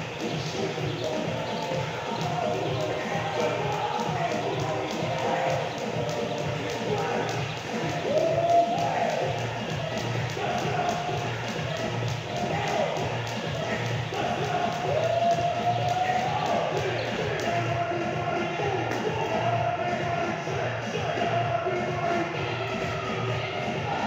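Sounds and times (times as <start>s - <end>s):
background music: 0.0s - 24.0s
jump rope slapping rubber floor: 0.2s - 17.6s.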